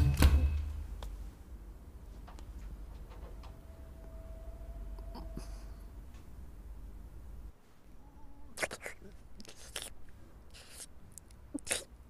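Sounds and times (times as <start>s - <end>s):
person slurping noodles: 8.6s - 10.9s, 11.6s - 11.9s.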